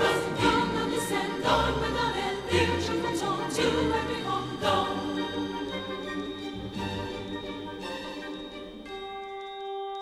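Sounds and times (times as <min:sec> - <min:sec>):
choir singing carol: 0:00.0 - 0:08.9.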